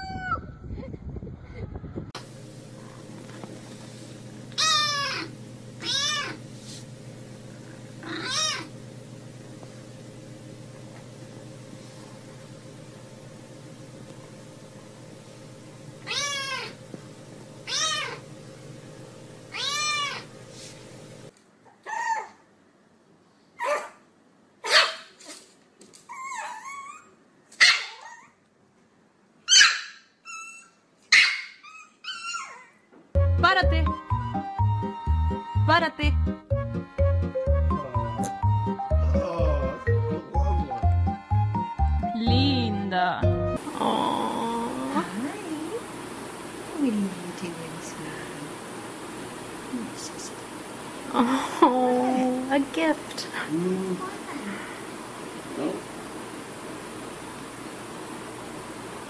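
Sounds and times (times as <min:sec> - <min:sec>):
dog whining: 0:00.0 - 0:00.5, 0:04.5 - 0:06.4, 0:08.0 - 0:08.7, 0:16.0 - 0:16.8, 0:17.7 - 0:18.2, 0:19.5 - 0:20.3, 0:21.7 - 0:22.4, 0:26.1 - 0:28.4, 0:29.5 - 0:32.9
kitten meowing: 0:04.6 - 0:06.4, 0:08.0 - 0:08.7, 0:16.0 - 0:16.8, 0:17.7 - 0:18.2, 0:19.5 - 0:20.3
small dog yapping: 0:04.6 - 0:06.4, 0:08.0 - 0:08.7, 0:16.0 - 0:16.8, 0:17.7 - 0:18.2, 0:19.5 - 0:20.3, 0:21.7 - 0:22.4, 0:23.6 - 0:24.0, 0:24.6 - 0:25.4, 0:26.1 - 0:28.4, 0:29.5 - 0:32.8.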